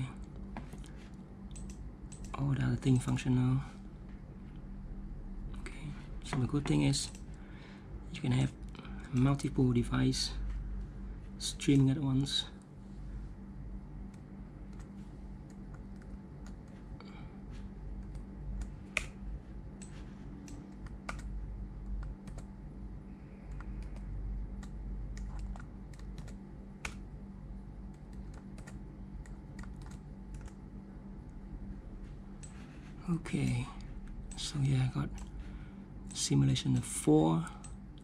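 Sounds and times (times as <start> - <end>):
steady low hum: 0.0 - 38.0
computer keyboard clicks: 1.5 - 3.1, 19.8 - 21.3, 22.0 - 22.5, 23.5 - 27.0, 27.9 - 30.6.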